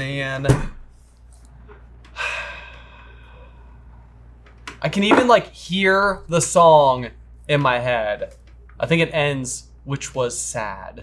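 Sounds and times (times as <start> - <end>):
person sighing: 2.1 - 3.7.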